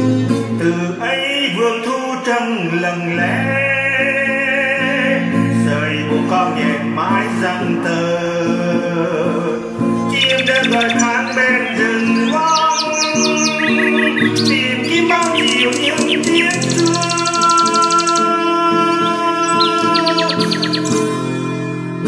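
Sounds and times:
soft instrumental music: 4.7 - 22.0
songbird singing: 9.8 - 21.4.

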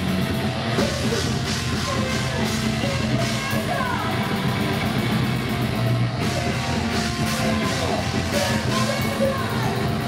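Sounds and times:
drum kit: 0.0 - 10.0
electric guitar: 0.0 - 10.0
live heavy rock band: 0.0 - 10.0.

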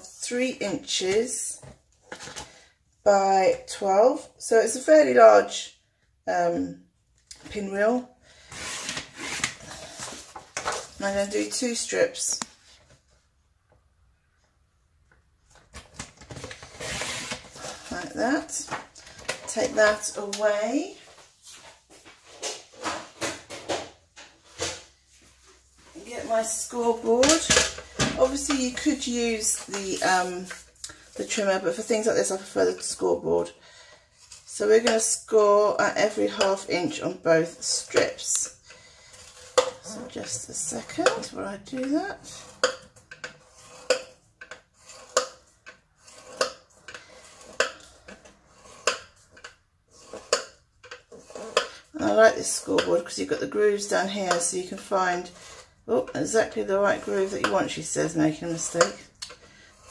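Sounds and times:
faint scrapes: 43.3 - 45.4, 46.0 - 50.5, 59.6 - 59.9
stylus scratching across paper: 43.4 - 44.0.

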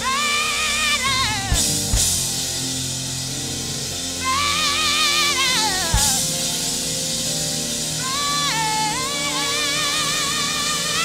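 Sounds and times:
person singing with vibrato: 0.0 - 2.2, 4.1 - 7.1, 7.9 - 11.0
drum and cymbal hit: 0.0 - 11.0
gospel band playing chords: 0.0 - 11.0.

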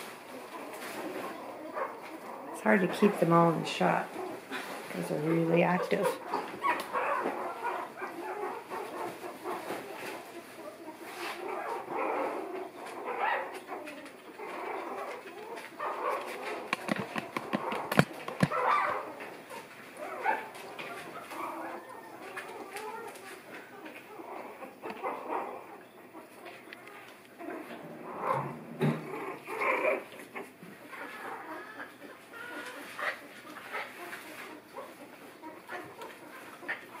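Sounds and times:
puppies whimpering and squeaking: 0.1 - 37.0.

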